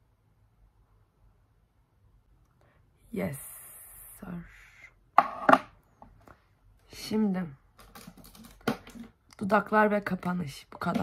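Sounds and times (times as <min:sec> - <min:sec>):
hard object knocking: 0:05.2 - 0:05.7.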